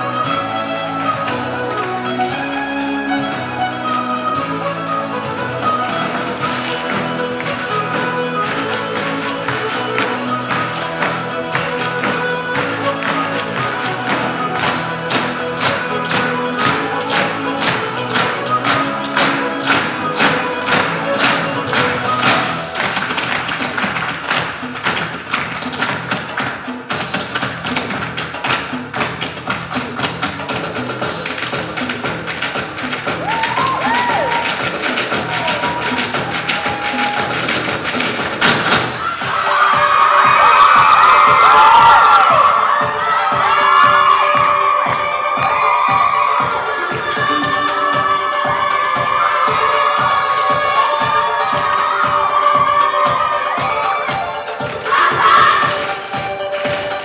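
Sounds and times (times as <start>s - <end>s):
stage dance music: 0.0s - 57.0s.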